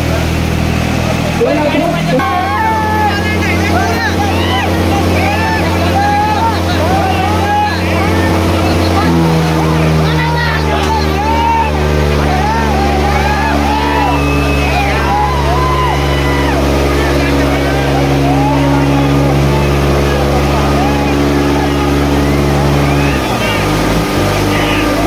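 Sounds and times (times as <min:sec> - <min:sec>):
crowd shouting: 0:00.0 - 0:25.0
tractor engines under load: 0:00.0 - 0:25.0.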